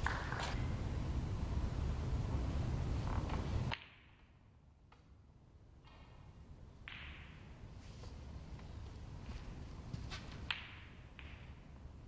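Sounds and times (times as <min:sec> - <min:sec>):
low background rumble: 0:00.0 - 0:03.8.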